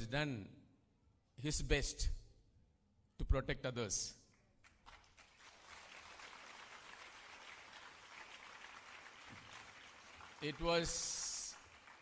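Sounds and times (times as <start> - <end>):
audience applause: 4.8 - 12.0.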